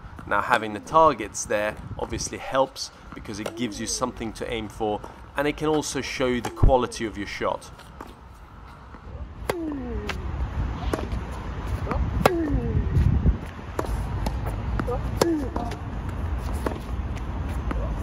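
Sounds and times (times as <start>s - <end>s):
tennis racket hitting ball: 3.4s - 4.0s, 9.4s - 10.2s, 10.8s - 11.2s, 11.8s - 12.7s, 13.7s - 16.9s
distant ball hits and bounces: 5.7s - 6.9s, 9.4s - 10.2s, 10.8s - 11.2s, 11.9s - 12.7s, 13.7s - 15.9s
player grunting: 9.5s - 10.2s.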